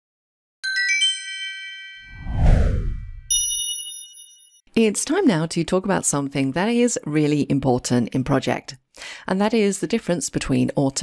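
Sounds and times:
ringing chime chord: 0.6s - 2.2s, 3.3s - 4.6s
rising bell-like chimes: 0.6s - 2.4s, 3.0s - 4.6s
whoosh into low rumble: 2.1s - 3.3s.

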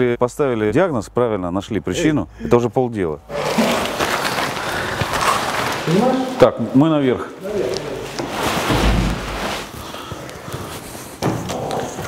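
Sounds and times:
clothing rustle: 3.3s - 6.8s, 7.4s - 12.0s.

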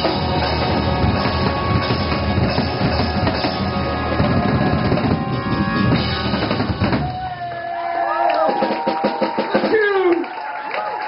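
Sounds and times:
live funk band playing: 0.0s - 7.6s.

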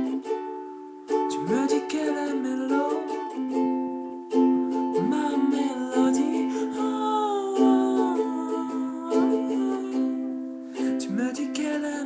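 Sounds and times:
man singing wordless notes: 0.0s - 0.3s, 1.2s - 3.9s, 4.8s - 12.0s
ukulele strummed in chords: 0.0s - 12.0s.

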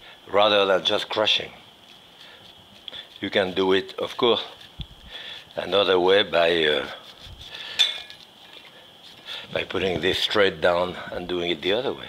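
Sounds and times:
knife cutting corn kernels: 1.9s - 9.5s
blade clinking against metal bowl: 7.8s - 8.2s.

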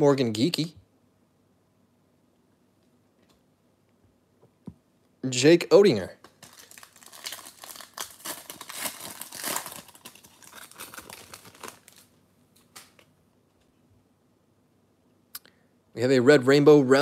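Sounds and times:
wrapper crinkling and tearing: 6.2s - 13.0s.

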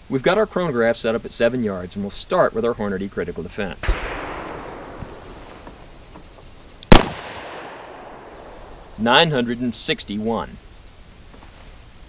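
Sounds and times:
revolver gunshot with echo: 3.8s - 6.0s, 6.9s - 8.9s.

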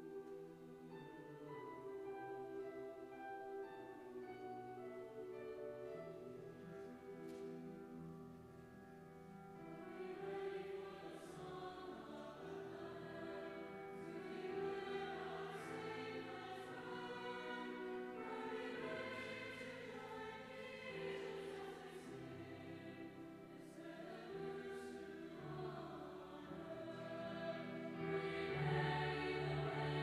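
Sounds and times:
mixed choir singing: 0.0s - 6.8s, 9.6s - 30.0s.

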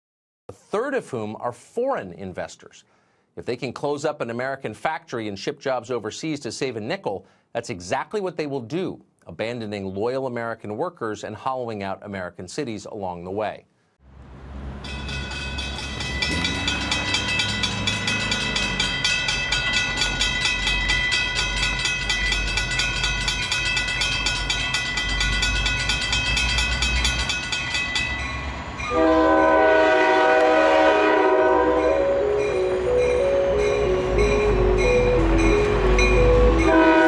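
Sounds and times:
train rumbling: 14.1s - 37.0s
high ringing tones: 14.8s - 29.1s, 31.8s - 37.0s
locomotive air horn chord: 15.5s - 18.9s, 28.8s - 37.0s.

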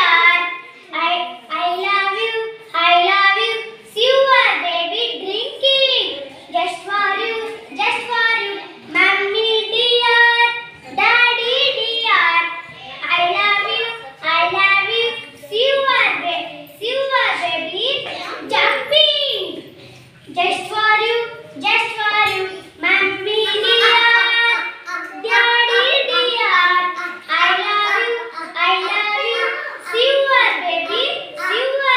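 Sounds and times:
children singing: 22.0s - 31.9s.

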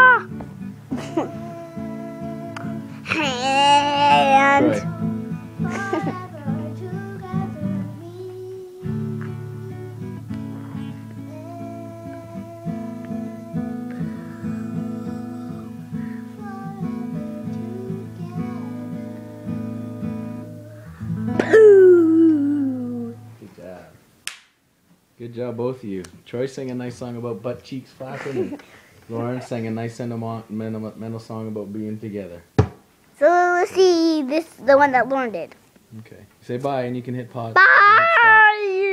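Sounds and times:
guitar-like music with held chords: 0.0s - 23.4s
child singing: 0.9s - 9.9s, 10.6s - 21.0s.

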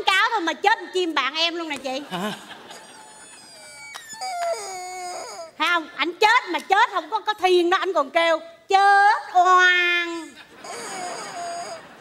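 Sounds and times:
person imitating a bird cry: 10.2s - 11.9s.

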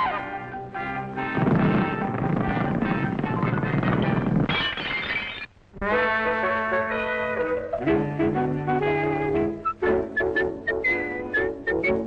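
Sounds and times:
high whistled tune: 9.1s - 12.0s.

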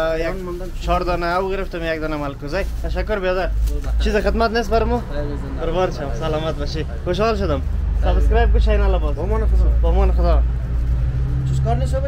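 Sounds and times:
men's voices: 0.0s - 12.0s
vehicle engine running: 0.0s - 12.0s.

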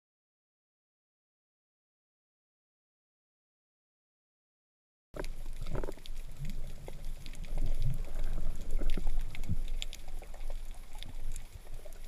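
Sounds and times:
faint clicks and crackles: 5.2s - 12.0s
muffled underwater rumble: 5.2s - 12.0s.

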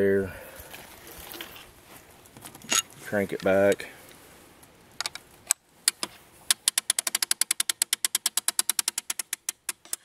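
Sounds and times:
crossbow crank ratchet clicking: 5.0s - 10.0s.

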